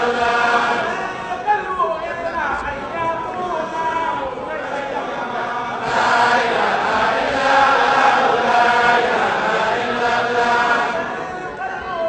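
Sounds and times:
congregation chanting in unison: 0.0 - 12.0.

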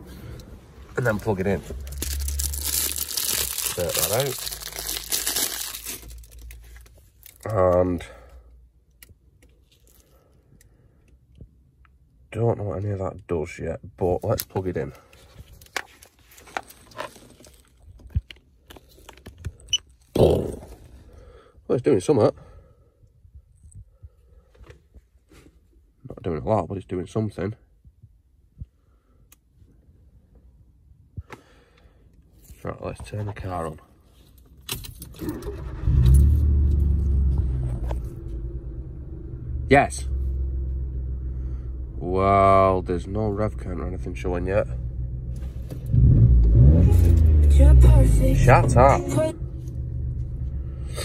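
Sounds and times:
car engine starting and idling: 0.0 - 8.8, 34.5 - 51.0.

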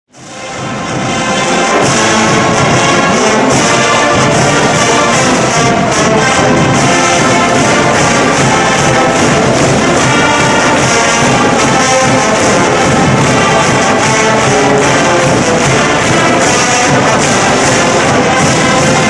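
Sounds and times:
orchestral music with brass: 0.1 - 19.0.

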